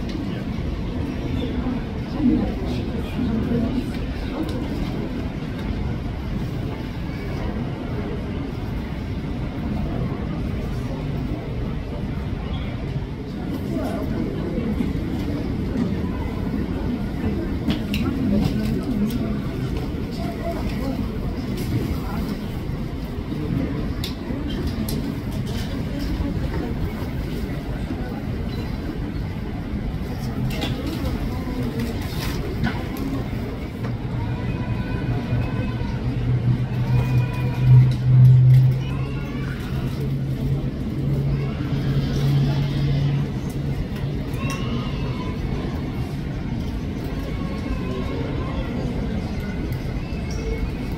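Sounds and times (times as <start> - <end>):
indistinct voices: 0.0 - 50.9.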